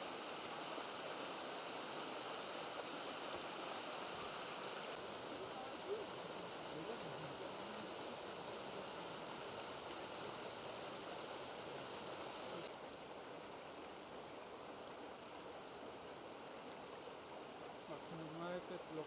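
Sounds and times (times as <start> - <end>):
stream rushing over rocks: 0.0 - 19.0.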